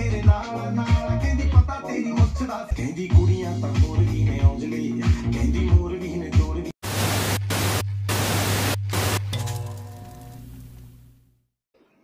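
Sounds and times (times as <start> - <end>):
television static hiss: 6.8 - 9.2.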